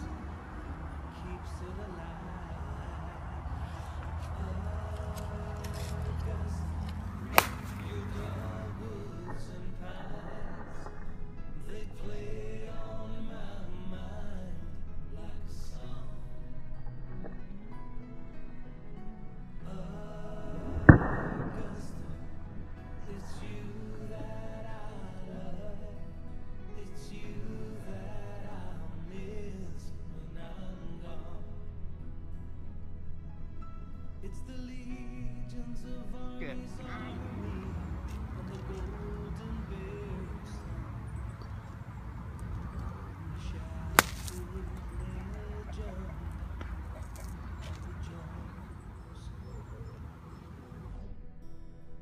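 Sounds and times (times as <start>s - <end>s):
steady low rumble: 0.0s - 52.0s
golf club striking ball: 5.6s - 9.6s, 41.3s - 47.4s.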